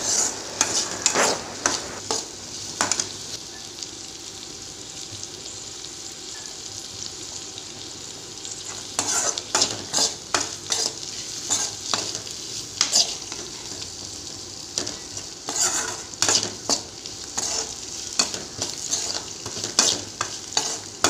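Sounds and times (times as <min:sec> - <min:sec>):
spoon scraping a pan: 0:00.0 - 0:03.1, 0:08.7 - 0:13.8, 0:14.8 - 0:21.0
food sizzling in oil: 0:00.0 - 0:21.0.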